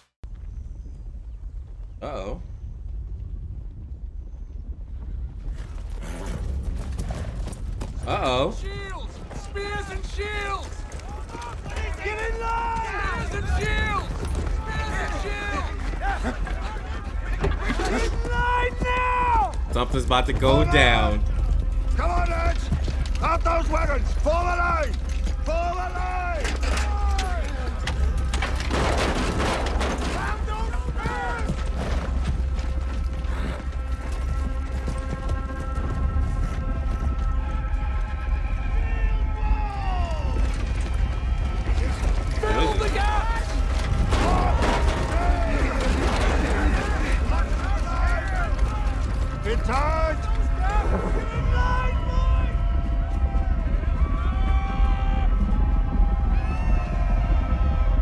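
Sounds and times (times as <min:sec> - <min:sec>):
horse hooves clopping: 0:04.7 - 0:57.8
soldiers shouting: 0:08.2 - 0:19.7, 0:37.4 - 0:58.0
low rumble: 0:10.7 - 0:58.0.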